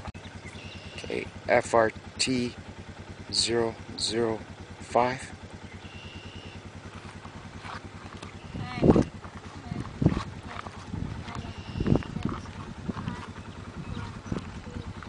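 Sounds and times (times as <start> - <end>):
small engine idling: 0.0 - 15.0.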